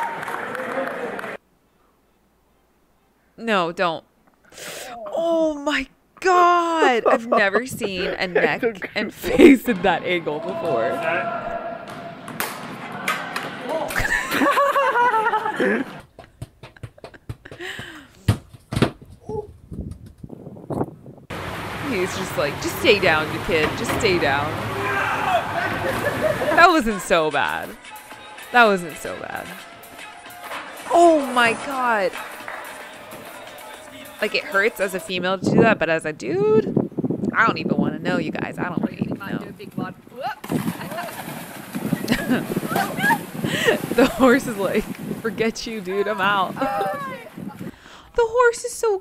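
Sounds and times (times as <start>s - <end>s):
people crying out: 6.6s - 16.0s, 24.5s - 27.0s, 42.6s - 44.1s, 46.6s - 47.4s
horse splashing into water: 40.4s - 45.4s.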